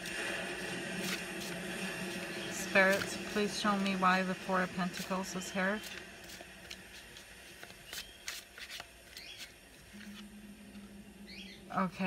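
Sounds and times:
cards being shuffled: 0.0 - 10.8.

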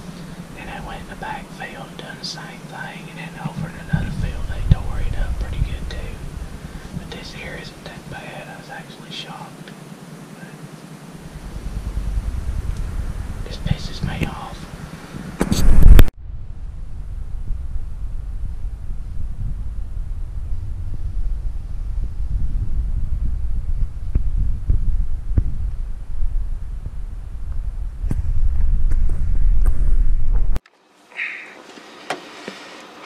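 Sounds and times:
wind buffeting microphone: 0.0 - 8.4, 11.0 - 30.6.

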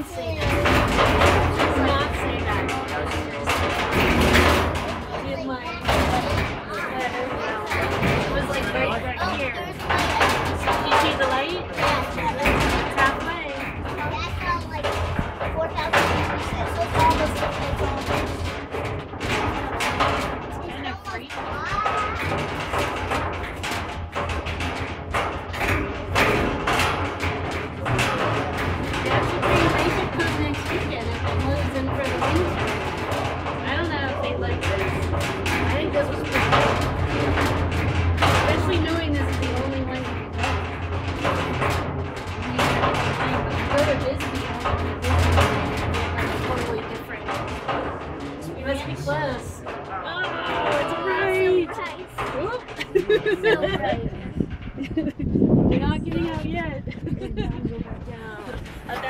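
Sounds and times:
hoist cage rattling and knocking: 0.0 - 59.0
steady low rumble: 0.0 - 59.0.

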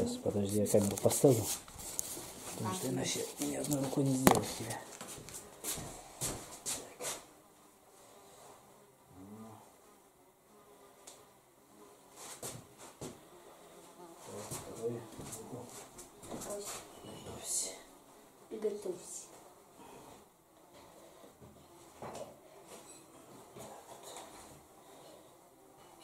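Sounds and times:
fly buzzing: 0.0 - 26.0.

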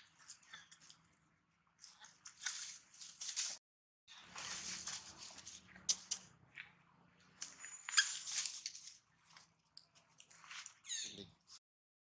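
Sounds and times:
dry leaves rustling and crackling: 2.3 - 6.2, 7.4 - 9.5
high-pitched animal call: 10.9 - 11.2.

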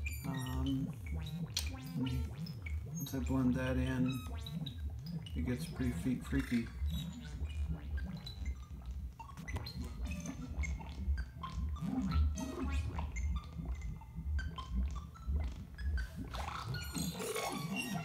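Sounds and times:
pulsing synth bass: 0.0 - 18.0
synth blips and chirps: 0.0 - 18.0.

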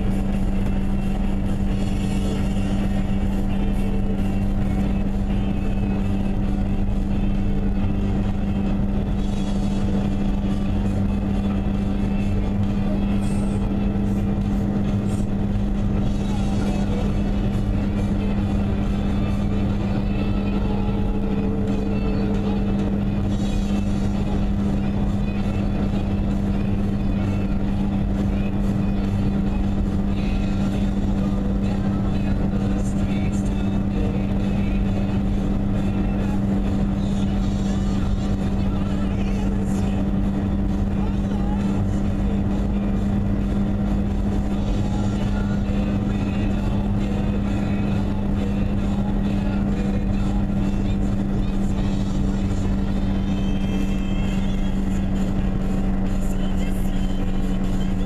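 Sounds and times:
car engine and tyre noise: 0.0 - 58.0.

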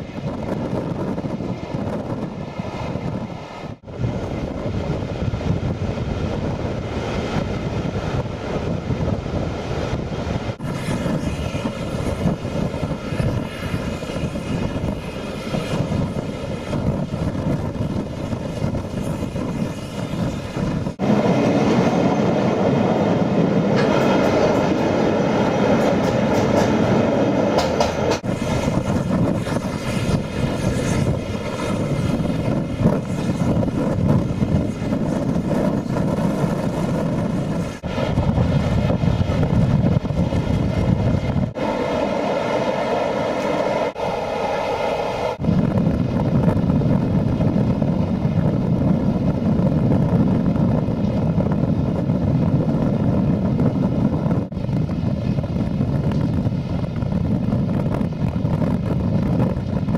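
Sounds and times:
rushing air: 0.0 - 59.9
train wheels rumbling on rail: 0.0 - 59.9.

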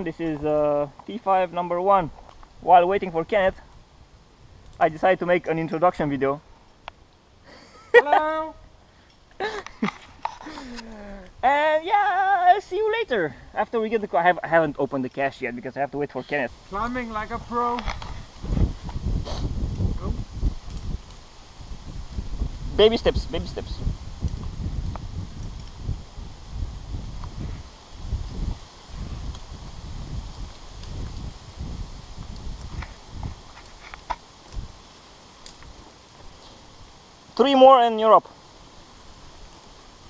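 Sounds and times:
rustling of climbing gear: 8.9 - 11.4, 17.7 - 22.3, 24.1 - 37.4
low rumbles on microphone: 17.3 - 33.5
light clicks and knocks of gear: 32.2 - 36.6.

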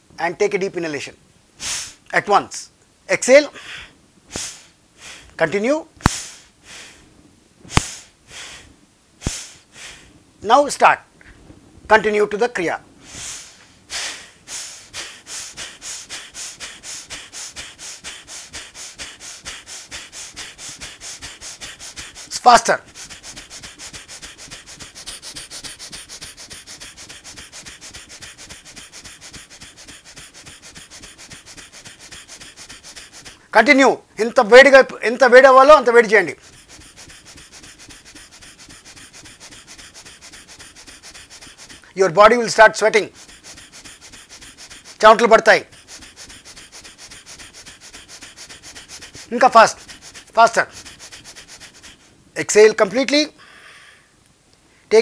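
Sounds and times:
rapid forceful nose breathing: 1.6 - 2.0, 3.6 - 5.4, 6.0 - 7.1, 7.7 - 10.1, 13.0 - 52.5.

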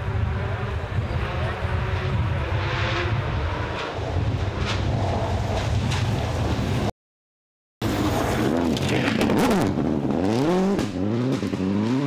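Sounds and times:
distant rally car engine: 0.0 - 6.2, 7.8 - 12.0.

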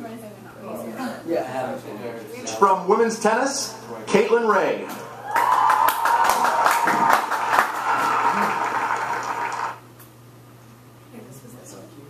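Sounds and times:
audience applauding: 5.2 - 9.8.

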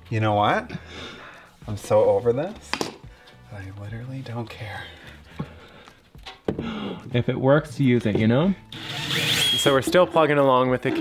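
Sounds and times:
cordless drill driving screw: 8.7 - 9.8.

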